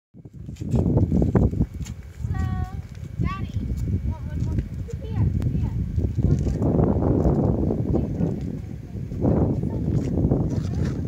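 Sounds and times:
wind buffeting microphone: 0.2s - 11.0s.

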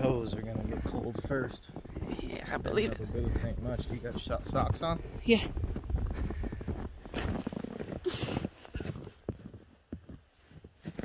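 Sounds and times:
footsteps crunching through snow: 3.6s - 11.0s.

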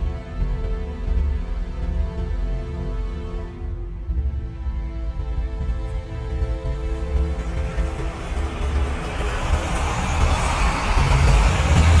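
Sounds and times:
noisy soundtrack with deep rumble: 0.0s - 12.0s.

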